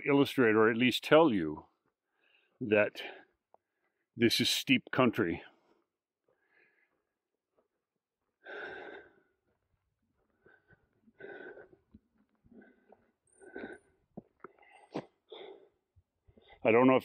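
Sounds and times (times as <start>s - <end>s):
breathy exhales: 8.4s - 9.3s, 10.4s - 11.8s.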